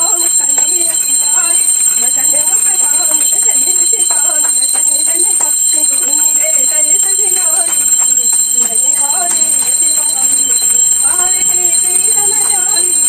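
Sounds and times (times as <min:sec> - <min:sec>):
hand bell ringing: 0:00.0 - 0:13.0
voices singing a hymn: 0:00.0 - 0:13.0.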